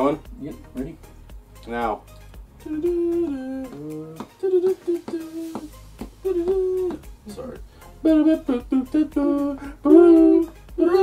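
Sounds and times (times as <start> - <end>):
low background music: 0.0 - 11.0
person humming: 2.6 - 11.0.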